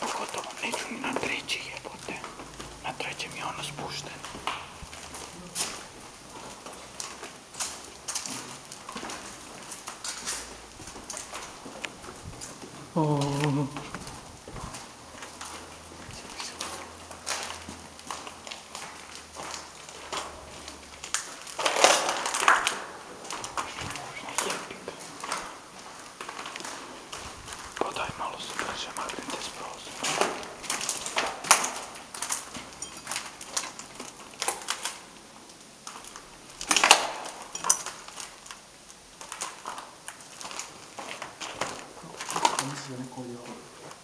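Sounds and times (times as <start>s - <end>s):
footsteps on debris: 0.0s - 44.0s.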